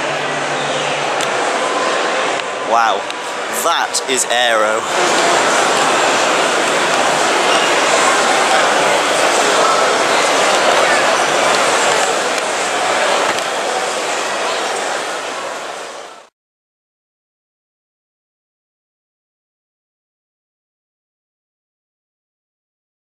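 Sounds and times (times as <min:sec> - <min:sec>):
crowd chatter: 0:00.0 - 0:16.3.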